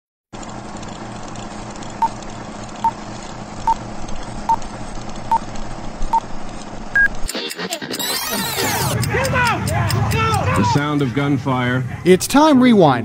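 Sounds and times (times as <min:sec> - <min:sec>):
film projector whirring clatter: 0:00.3 - 0:11.7.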